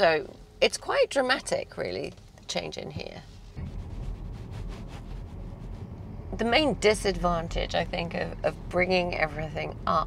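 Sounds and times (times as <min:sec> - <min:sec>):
wind rumbling on microphone: 0:03.6 - 0:06.6.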